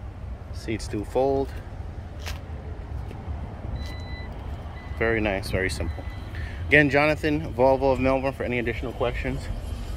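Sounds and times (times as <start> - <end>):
electronic beeps: 3.8 - 6.4.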